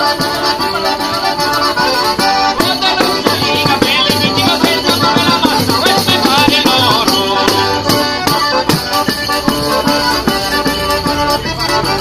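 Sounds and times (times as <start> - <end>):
button accordion playing folk dance: 0.0 - 12.0
tambourine beating steadily: 0.0 - 12.0.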